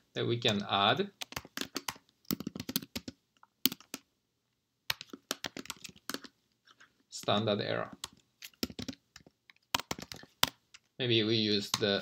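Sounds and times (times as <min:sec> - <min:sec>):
computer keyboard typing: 0:01.2 - 0:04.1, 0:04.9 - 0:06.3, 0:07.9 - 0:10.6.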